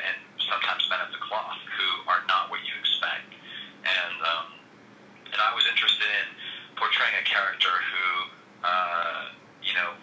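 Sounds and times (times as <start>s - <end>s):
man talking: 0.0s - 4.6s, 5.3s - 10.0s.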